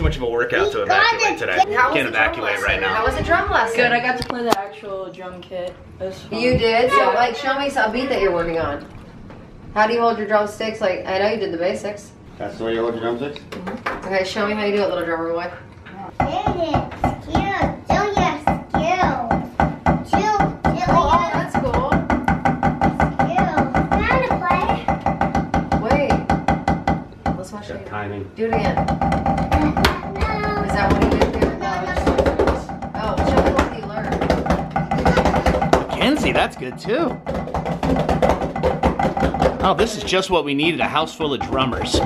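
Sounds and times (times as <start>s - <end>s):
drumsticks tapping practice pad: 28.6s - 42.0s.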